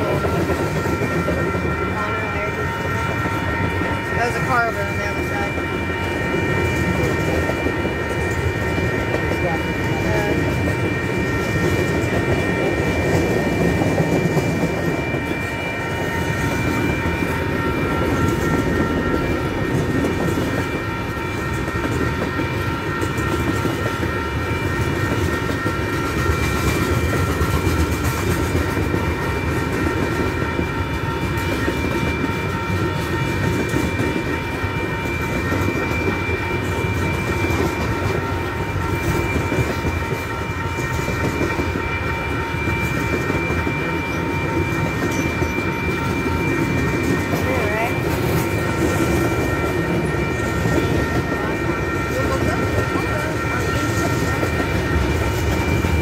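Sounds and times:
high ringing tones: 0.0s - 56.0s
train wheels rumbling on rail: 0.0s - 56.0s.

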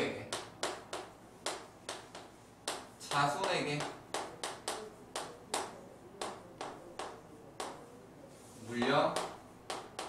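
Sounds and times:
chalk tapping on chalkboard: 0.2s - 10.0s.

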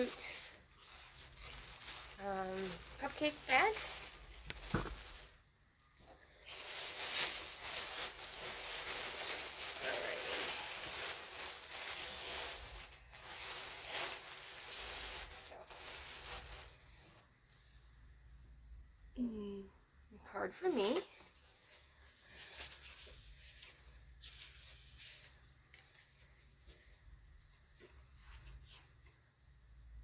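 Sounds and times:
plastic gift bag crinkling: 0.0s - 17.2s.

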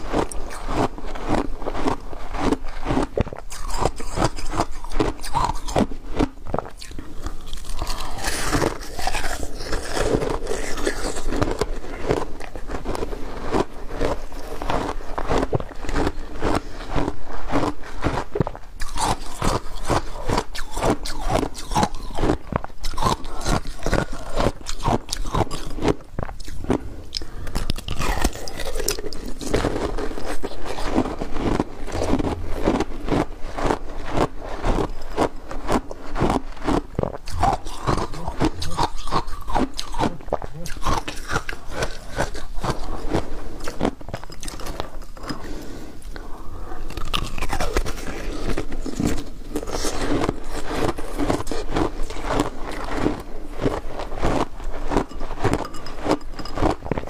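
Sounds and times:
chewing crunchy ice: 0.0s - 57.0s.

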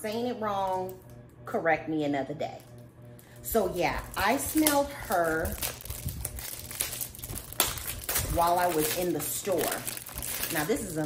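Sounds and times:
cellophane wrapping crinkling: 3.7s - 11.0s.

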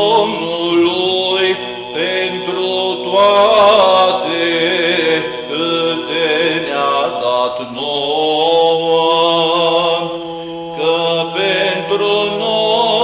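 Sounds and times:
unaccompanied choral chant: 0.0s - 13.0s.

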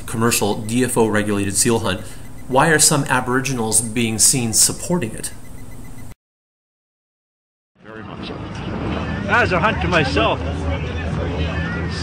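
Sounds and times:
steady rumbling hiss: 0.0s - 5.8s.

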